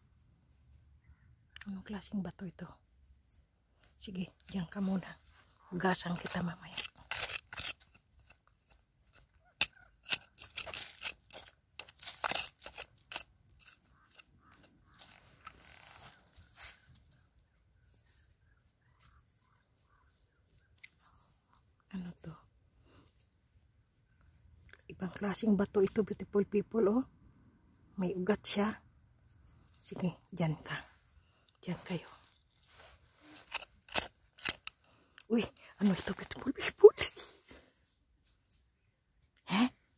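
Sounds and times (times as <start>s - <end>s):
metal blade scraping gravelly soil: 4.9s - 16.8s, 32.2s - 34.8s.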